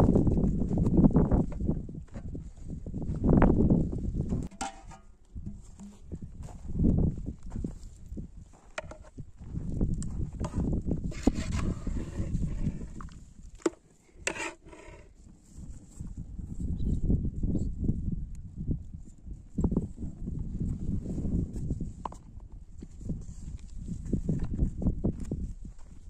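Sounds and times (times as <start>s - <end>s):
metal ladle clinking on pot: 4.5s - 5.1s.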